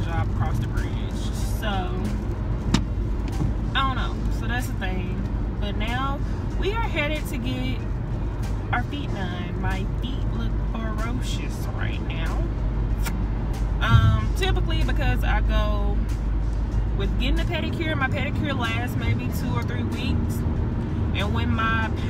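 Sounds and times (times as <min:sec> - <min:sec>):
voice: 0:00.0 - 0:02.1, 0:03.8 - 0:07.8, 0:08.8 - 0:12.5, 0:13.8 - 0:16.0, 0:17.0 - 0:20.4, 0:21.2 - 0:22.0
background music: 0:00.0 - 0:22.0
road and engine rumble in a car: 0:00.0 - 0:22.0.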